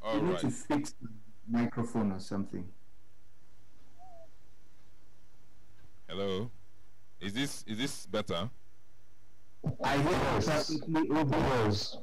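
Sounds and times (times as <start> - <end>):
electrical hum and hiss: 0.0 - 12.0
faint chirp: 3.8 - 5.0.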